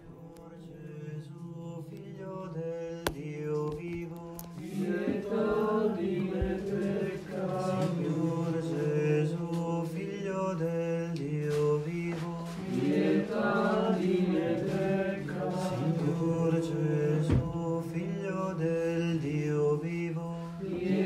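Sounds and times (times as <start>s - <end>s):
slow vocal chant: 0.0s - 21.0s.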